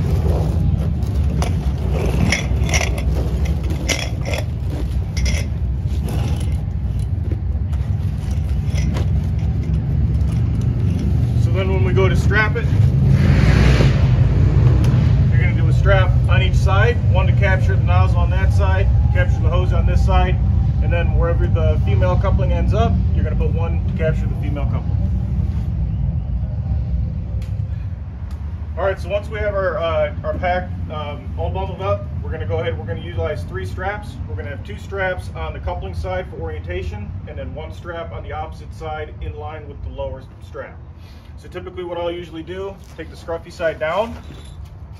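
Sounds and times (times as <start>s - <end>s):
hose scraping on concrete: 0.0s - 13.3s, 42.6s - 44.8s
steady low rumble: 0.0s - 40.8s.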